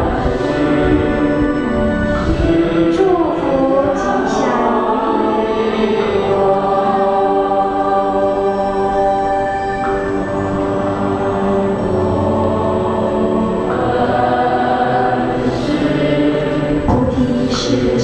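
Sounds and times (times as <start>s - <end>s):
many voices chanting: 0.0s - 18.0s.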